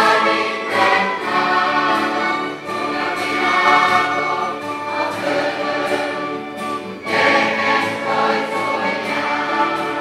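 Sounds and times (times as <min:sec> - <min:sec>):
children's choir singing: 0:00.0 - 0:10.0
instrumental accompaniment: 0:00.0 - 0:10.0.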